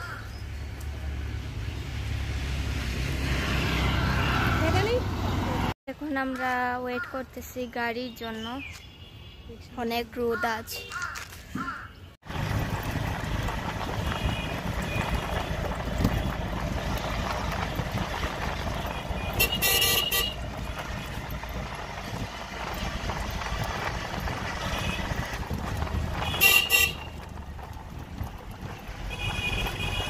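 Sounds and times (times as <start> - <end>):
vehicle rumble from on board: 12.2 - 30.0.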